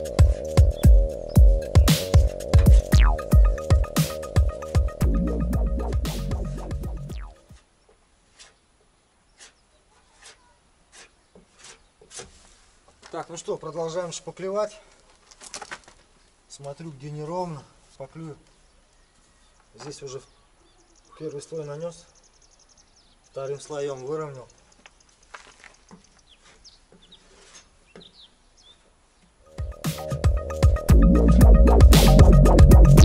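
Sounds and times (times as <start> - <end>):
low bird calls: 0.0 - 5.3
bird chirps: 0.0 - 5.9, 7.1 - 8.6, 18.4 - 30.5.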